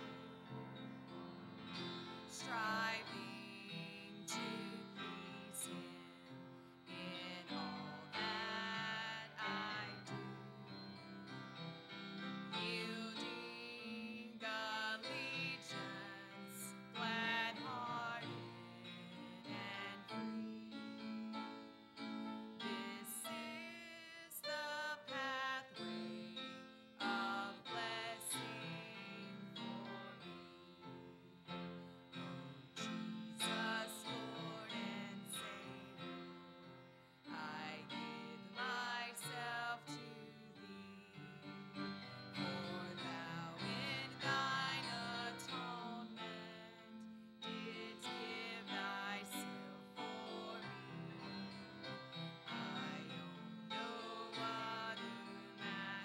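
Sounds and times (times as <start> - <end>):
congregation singing a hymn: 0.0 - 56.0
piano accompaniment: 0.0 - 56.0.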